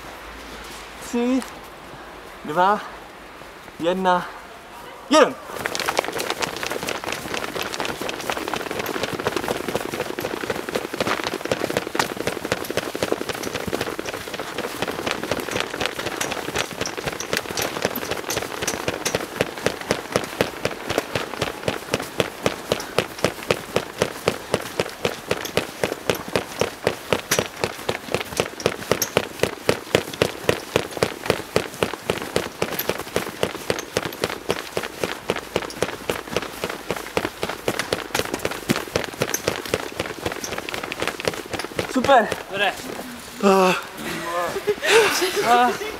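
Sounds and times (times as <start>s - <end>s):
costumes rustling: 4.9s - 45.9s
feet stamping in snow: 5.5s - 43.4s.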